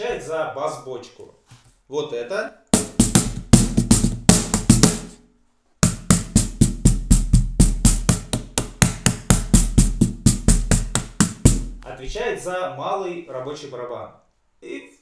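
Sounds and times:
cajon slapped by hand: 2.8 - 5.2, 5.8 - 11.9.

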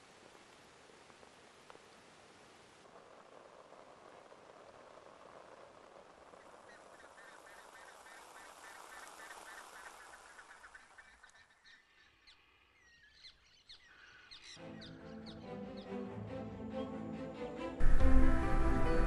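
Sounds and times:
steady hiss: 0.0 - 12.6, 17.8 - 19.0
music: 14.6 - 19.0.

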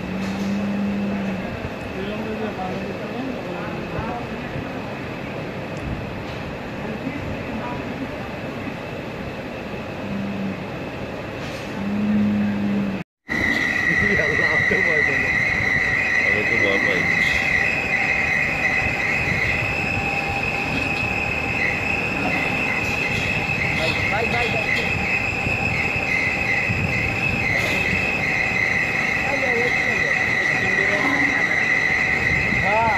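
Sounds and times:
low held tone: 0.0 - 1.6, 10.0 - 10.7, 11.7 - 32.9
ventilation fans whirring: 0.0 - 32.9
faint high whine: 11.7 - 32.9.

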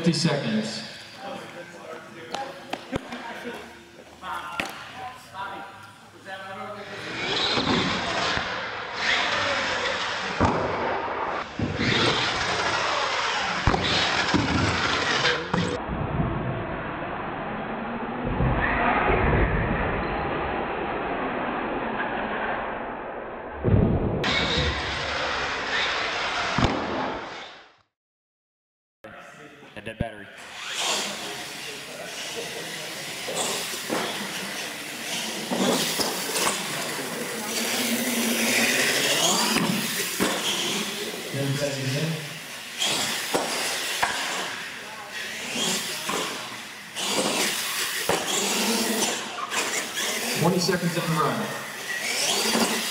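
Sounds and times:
people talking: 0.0 - 7.4, 29.1 - 40.2, 40.8 - 42.4, 50.3 - 51.8
toy truck motor and tyre noise: 7.0 - 15.8, 24.3 - 27.7, 30.4 - 52.9.

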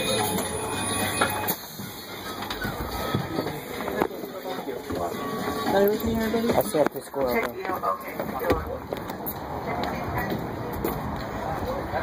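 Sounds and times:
bus drive hum: 0.0 - 12.0.

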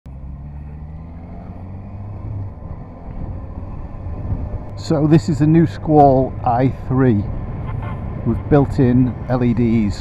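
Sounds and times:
motorcycle engine rumbling: 0.1 - 10.0.

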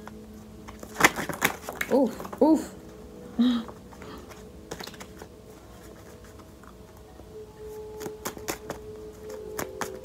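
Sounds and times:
faint steady tone: 2.7 - 10.0.

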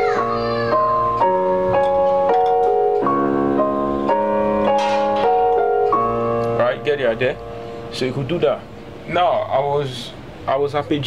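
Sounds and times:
electronic piano chords: 0.0 - 11.0.

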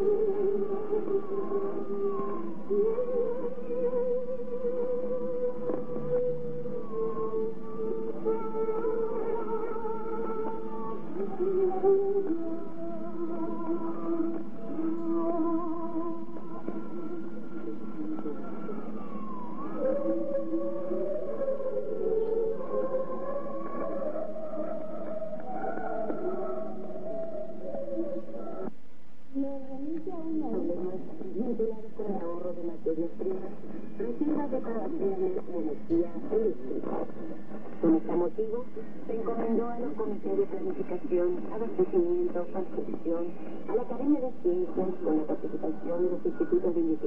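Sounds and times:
wavering musical tones over radio: 0.0 - 28.8, 29.4 - 47.0
radio receiver background noise: 29.8 - 47.0.

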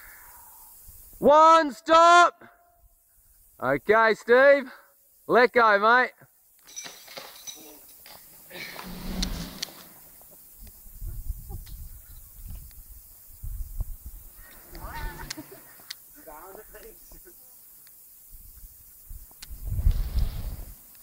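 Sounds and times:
man yelling: 1.2 - 2.5
wind rumbling on microphone: 8.8 - 10.0, 10.6 - 15.3, 18.3 - 20.8.

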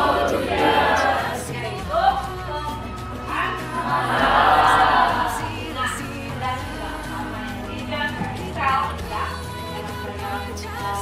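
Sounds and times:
choir singing: 0.0 - 2.2, 3.6 - 7.9.

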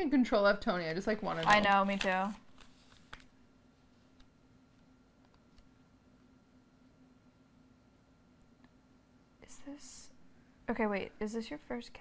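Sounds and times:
low room hum: 0.0 - 12.0
paper rustling: 0.9 - 3.3
woman speaking: 1.2 - 2.4, 9.4 - 12.0.

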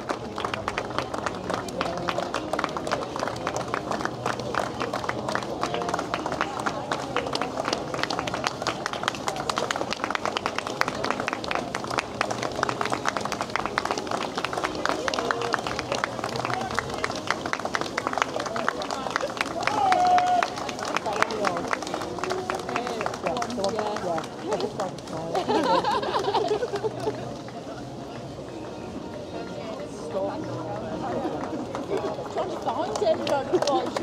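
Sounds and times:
spectators clapping: 0.0 - 27.6, 30.6 - 34.0
crowd voices: 0.0 - 34.0.

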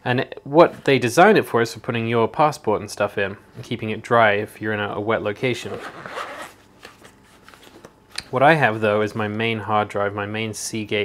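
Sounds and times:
zipper pulled open: 5.6 - 6.6.

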